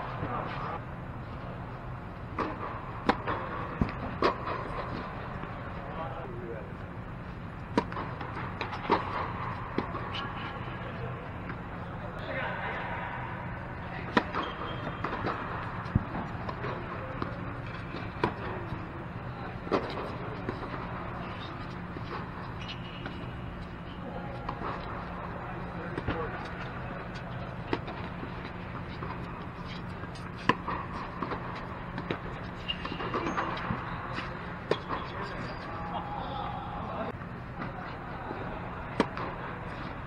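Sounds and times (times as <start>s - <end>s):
steady low hum: 0.0s - 40.0s
tennis balls struck by rackets: 2.3s - 5.6s, 7.6s - 11.7s, 14.0s - 35.6s, 38.9s - 39.8s
players' voices: 2.4s - 6.9s, 8.0s - 40.0s.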